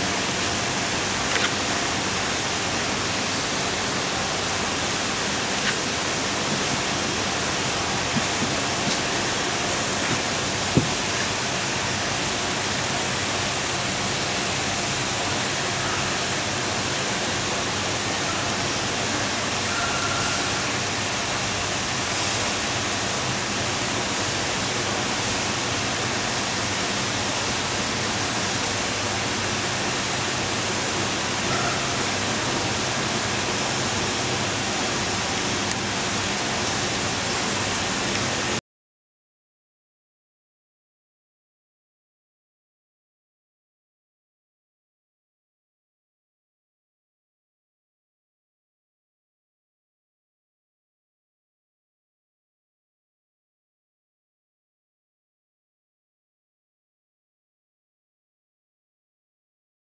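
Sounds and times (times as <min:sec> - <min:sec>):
running water rushing: 0:00.0 - 0:38.6.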